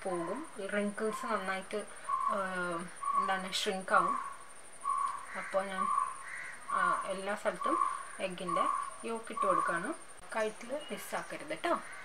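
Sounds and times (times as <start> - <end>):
crow cawing: 2.0 - 2.3, 4.1 - 9.9, 11.8 - 12.0.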